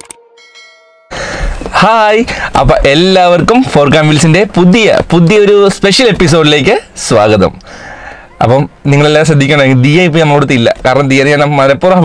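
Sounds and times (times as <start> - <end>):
bell-like chime: 0.2 - 1.2
man speaking: 1.8 - 7.6, 8.4 - 12.0.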